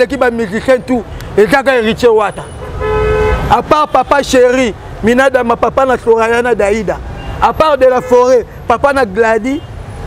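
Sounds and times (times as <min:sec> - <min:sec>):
passing traffic rumble: 0:00.0 - 0:10.0
vehicle horn honking: 0:02.5 - 0:04.2.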